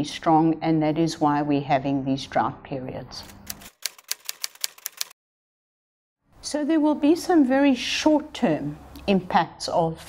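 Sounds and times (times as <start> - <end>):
typewriter keys clacking: 3.2 - 5.2.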